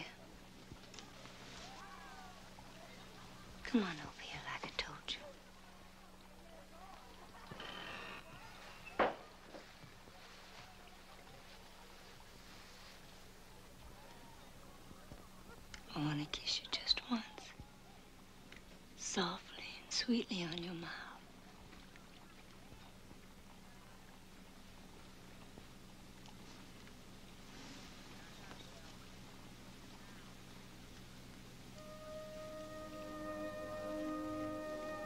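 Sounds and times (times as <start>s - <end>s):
low steady hum: 0.0s - 35.0s
woman whispering: 3.6s - 5.3s, 15.9s - 17.6s, 19.0s - 21.2s.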